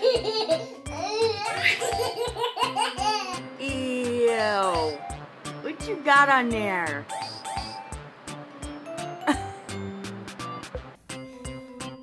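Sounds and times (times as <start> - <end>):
background music with beat: 7.0 - 12.0.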